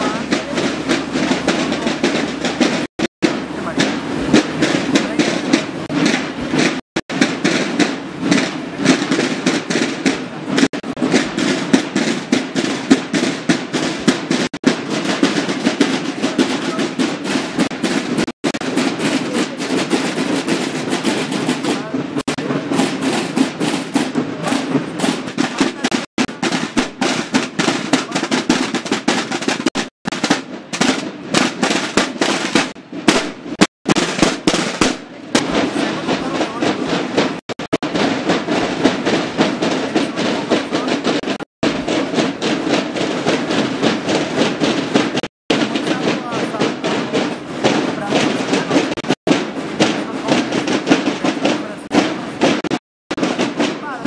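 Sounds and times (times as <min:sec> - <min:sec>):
voices: 0:00.0 - 0:11.7, 0:14.1 - 0:28.9, 0:34.5 - 0:41.4, 0:44.1 - 0:49.2, 0:49.8 - 0:54.0
marching snare drums cadence: 0:00.0 - 0:54.0.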